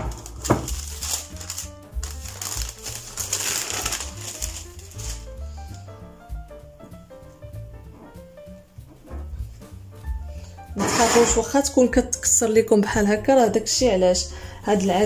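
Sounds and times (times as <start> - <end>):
baking paper crinkling: 0.0 - 5.9
melodic background music: 0.0 - 15.0.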